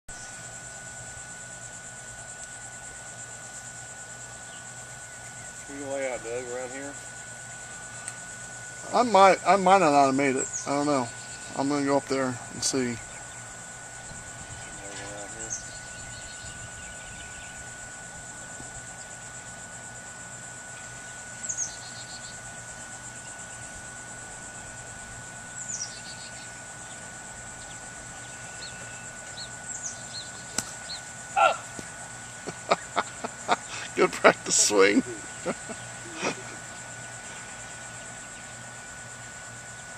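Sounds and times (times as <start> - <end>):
insects trilling: 0.1 - 39.9
bird descending calls: 28.2 - 37.4.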